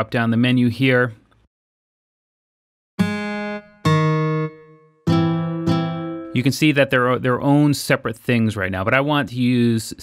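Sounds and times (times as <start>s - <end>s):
acoustic guitar chords strummed: 3.0s - 6.5s.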